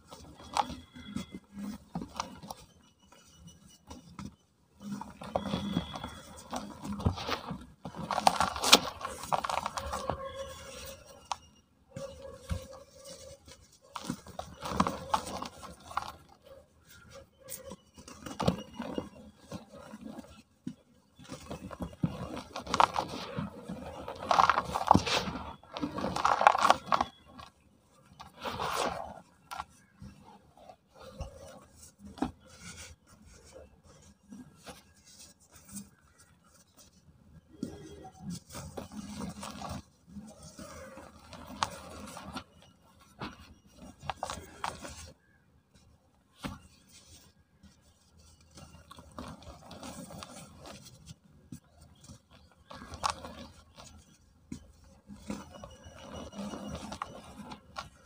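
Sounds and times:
crumbs rasping and rustling: 0:00.0 - 0:58.0
cement chunks crunching by hand: 0:05.0 - 0:11.4, 0:21.2 - 0:29.7.

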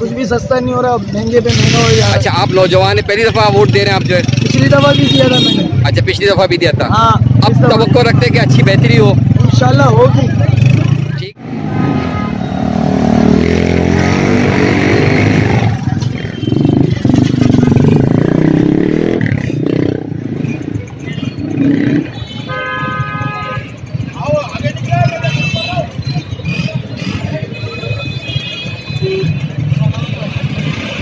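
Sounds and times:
chatter of many people: 0:00.0 - 0:12.9, 0:14.9 - 0:31.0
motorcycle engines running: 0:00.0 - 0:31.0.

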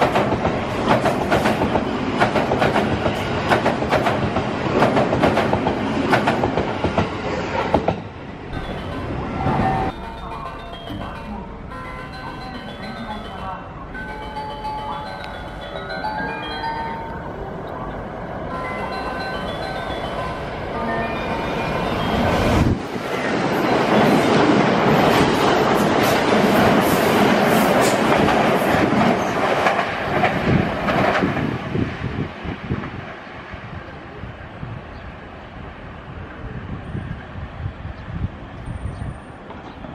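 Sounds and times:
electric train passing at speed: 0:00.0 - 0:39.9.

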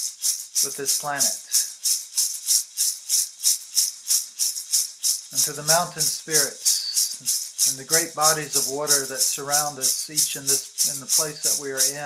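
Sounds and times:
hand rattle shaken: 0:00.0 - 0:12.0.

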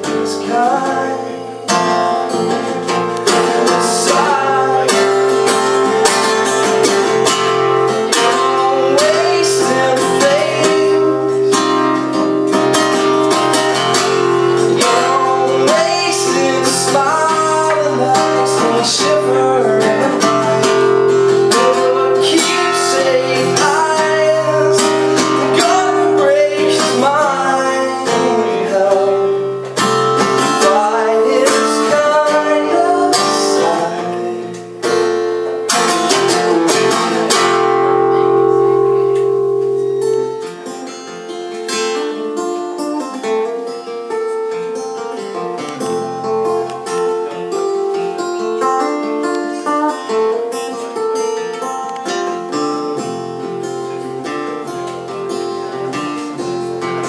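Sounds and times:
man singing: 0:00.0 - 0:35.1
acoustic guitar strumming: 0:00.0 - 0:57.0.

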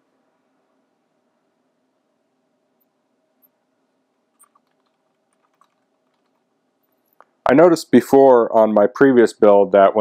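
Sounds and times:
faint keyboard typing: 0:04.3 - 0:07.4.

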